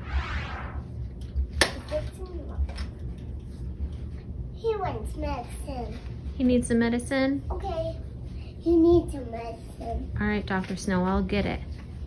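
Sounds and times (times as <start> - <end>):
low rumble: 0.0 - 1.6.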